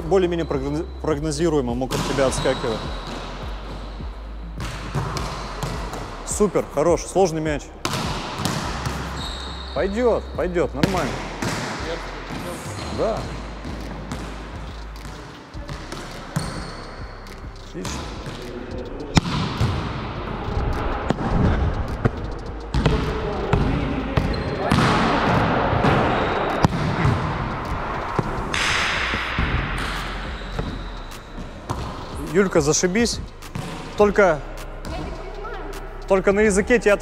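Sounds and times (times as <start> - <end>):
loud rushing noise: 19.6 - 23.0, 24.9 - 34.7.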